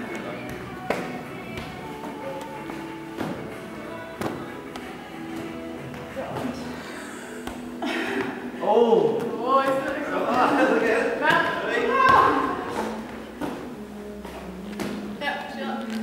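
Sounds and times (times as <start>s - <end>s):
footballs slapping hands: 0.0s - 6.7s, 7.4s - 8.5s, 9.1s - 16.0s
music playing: 0.0s - 16.0s.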